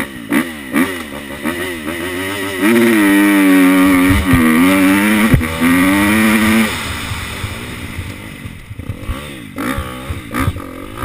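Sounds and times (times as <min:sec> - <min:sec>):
motorbike engine revving: 0:00.0 - 0:11.0.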